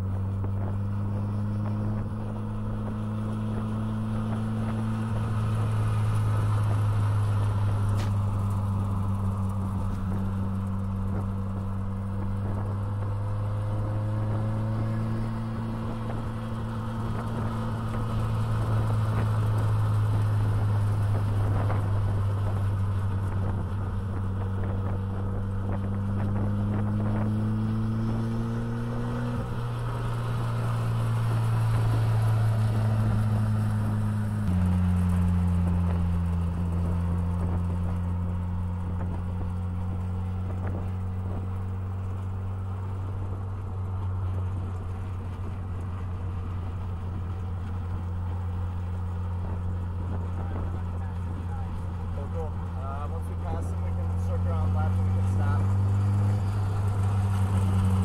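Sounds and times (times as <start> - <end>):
car engine running: 0.0 - 58.0.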